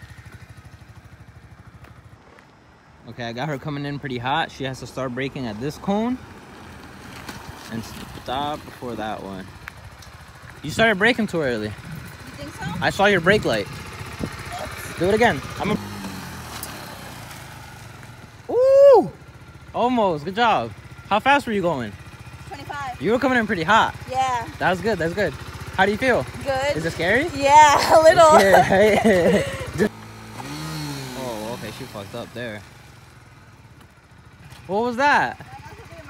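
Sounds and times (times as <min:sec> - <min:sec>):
motorcycle engine puttering: 0:00.0 - 0:02.5, 0:05.0 - 0:18.5, 0:19.1 - 0:36.0.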